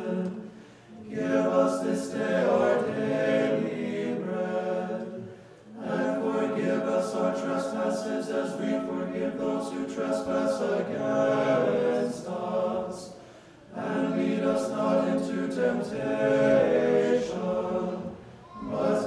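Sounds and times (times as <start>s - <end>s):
choir singing a cappella: 0.0s - 19.0s.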